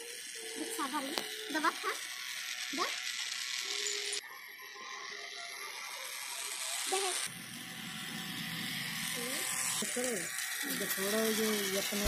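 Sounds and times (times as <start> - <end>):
small toy motor whirring: 0.0 - 12.0.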